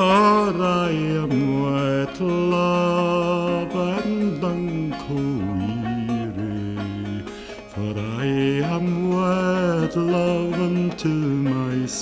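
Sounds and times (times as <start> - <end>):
acoustic guitar: 0.0 - 12.0
man singing folk song: 0.0 - 12.0.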